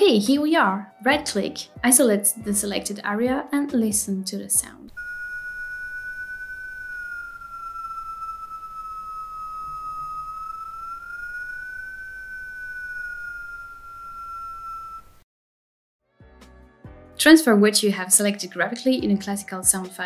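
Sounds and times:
turbo high whistle: 4.9s - 15.2s.

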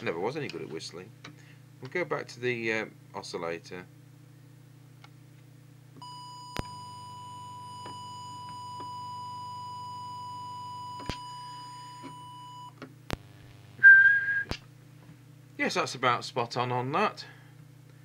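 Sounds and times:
low steady hum: 0.0s - 18.0s
steady test tone: 6.0s - 14.5s
short whistle: 13.8s - 14.6s.

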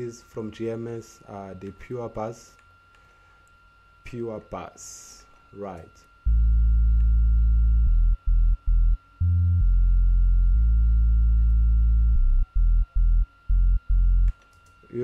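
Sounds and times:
deep synth bassline: 6.3s - 14.3s.

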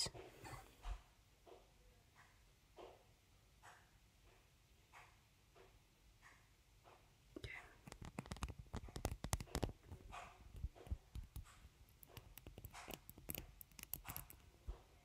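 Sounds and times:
small objects clicking and rustling: 7.8s - 14.6s.

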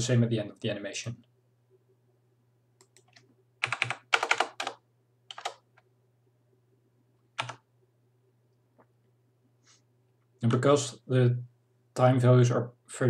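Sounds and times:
faint low hum: 0.0s - 13.0s
computer keyboard typing: 2.8s - 5.8s, 7.4s - 7.6s.

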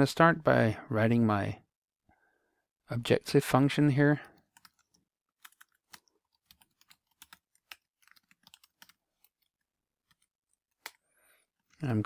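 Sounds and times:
computer keyboard typing: 4.3s - 11.0s.

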